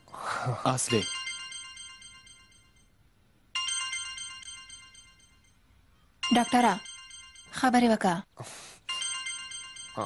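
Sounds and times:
telephone ringing: 0.8 - 8.1, 8.8 - 10.0.

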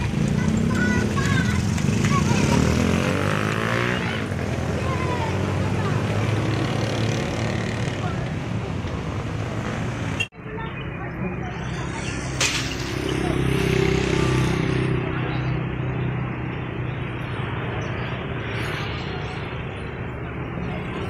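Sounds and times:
people talking: 0.0 - 9.8, 10.4 - 16.1, 18.5 - 21.0.

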